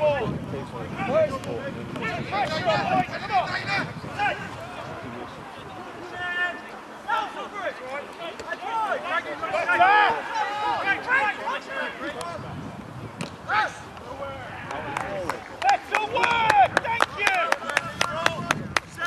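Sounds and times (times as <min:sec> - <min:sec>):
players shouting: 0:00.9 - 0:12.5, 0:13.4 - 0:19.0.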